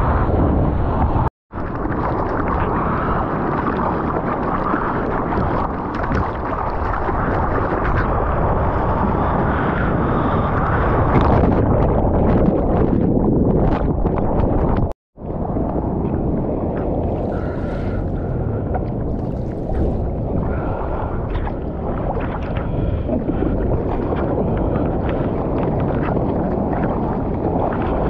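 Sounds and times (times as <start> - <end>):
wind and water rumble: 0.0 - 28.0
water sloshing and splashing: 1.5 - 28.0.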